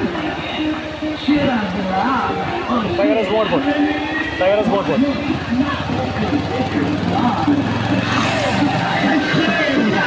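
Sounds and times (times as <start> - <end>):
vehicle engine hum: 0.0 - 10.0
voices calling out: 0.0 - 10.0.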